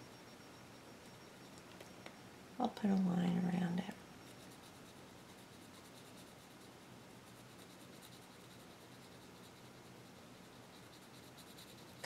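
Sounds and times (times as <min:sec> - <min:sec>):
pencil scratching on paper: 0:04.3 - 0:12.0.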